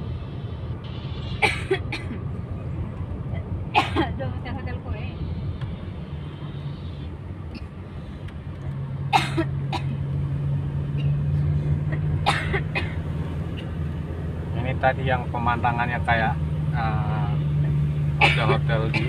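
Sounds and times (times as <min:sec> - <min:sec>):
car engine and road noise: 0:00.0 - 0:19.0.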